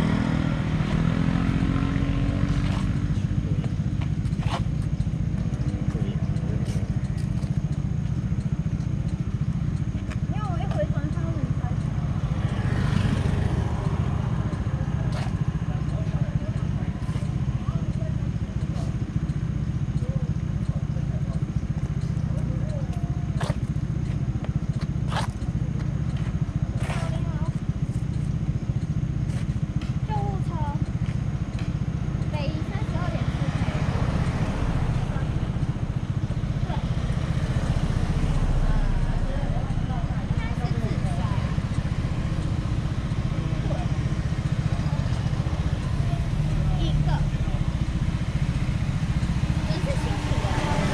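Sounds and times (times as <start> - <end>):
people talking: 5.4 - 7.5, 10.0 - 19.0, 20.0 - 23.7, 24.3 - 27.7, 30.0 - 50.9
steady low rumble: 13.6 - 50.9
car passing: 32.4 - 50.9.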